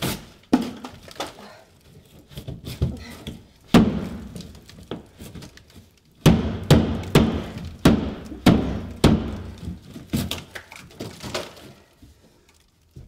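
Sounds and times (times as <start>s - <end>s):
heavy thuds on enclosure walls: 3.7s - 4.4s, 6.2s - 10.2s.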